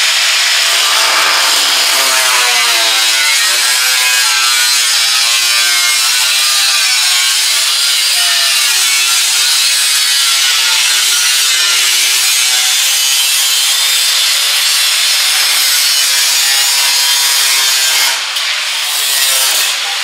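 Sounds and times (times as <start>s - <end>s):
cutting wheel grinding metal: 0.0s - 14.0s.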